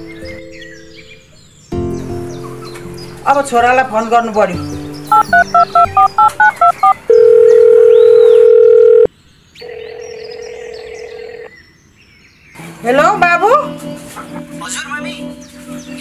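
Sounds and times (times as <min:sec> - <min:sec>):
touch-tone keypad beeps: 0:05.1 - 0:09.1
phone ringing tone: 0:05.1 - 0:11.5.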